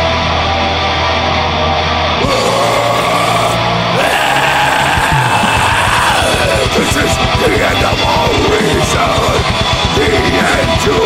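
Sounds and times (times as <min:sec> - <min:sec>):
distorted electric guitars: 0:00.0 - 0:11.0
drums: 0:00.0 - 0:11.0.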